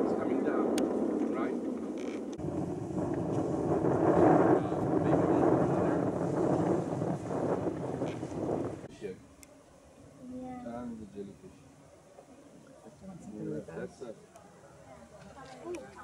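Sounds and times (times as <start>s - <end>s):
wind rushing on microphone: 0.0s - 8.9s.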